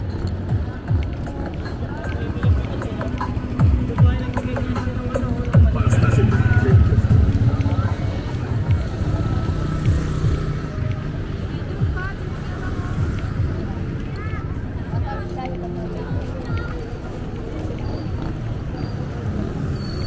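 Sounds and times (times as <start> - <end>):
people chattering: 0.0 - 20.0
vehicles passing on highway: 0.0 - 20.0.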